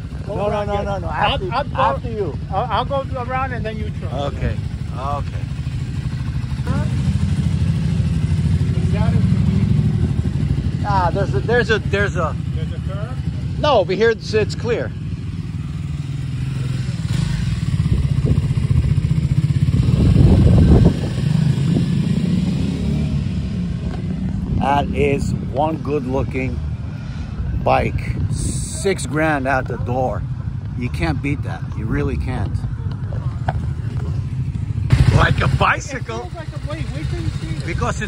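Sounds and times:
motorcycle engine riding past: 3.4 - 13.9, 14.6 - 24.5, 33.5 - 38.0.

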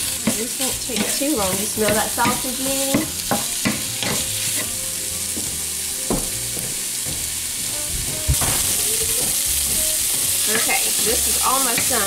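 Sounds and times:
wooden spatula scraping meat: 0.0 - 4.7
meat sizzling in a skillet: 0.0 - 12.0
knock: 6.1 - 6.3.

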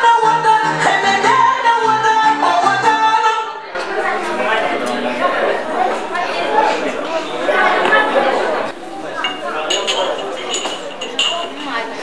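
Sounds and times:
overlapping chatter: 2.5 - 12.0.

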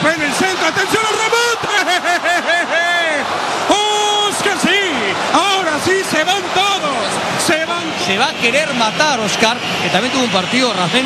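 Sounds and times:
commentator shouting excitedly: 0.0 - 8.0.

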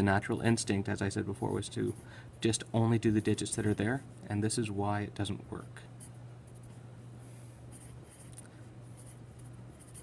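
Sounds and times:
steady low hum: 0.0 - 10.0
pencil scratching on paper: 7.7 - 10.0.

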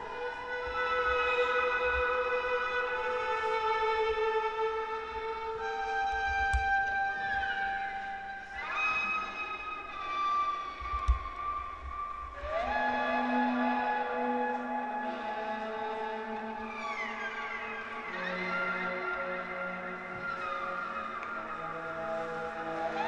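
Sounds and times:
solo violin playing long notes: 0.0 - 23.0.

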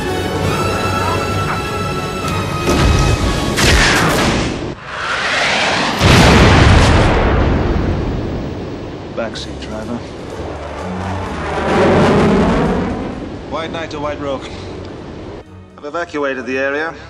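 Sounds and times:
film score music: 0.0 - 5.6, 8.6 - 17.0
heavy boom: 2.7 - 8.7, 10.4 - 13.5
jet aircraft: 4.8 - 6.1, 10.1 - 13.5
rushing swell: 4.8 - 6.3, 10.1 - 14.0.

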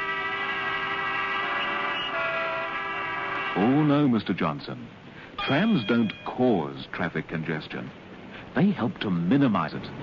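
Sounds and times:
many car horns sounding: 0.0 - 4.0, 5.4 - 6.4.

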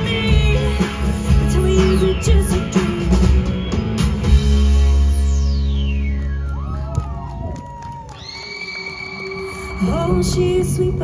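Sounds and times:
live rock band playing: 0.0 - 6.8
audience cheering and whooping: 6.0 - 10.6.

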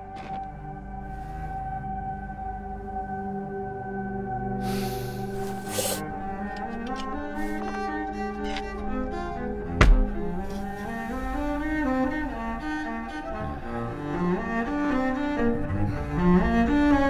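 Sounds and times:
cello playing slow melody: 0.5 - 17.0.

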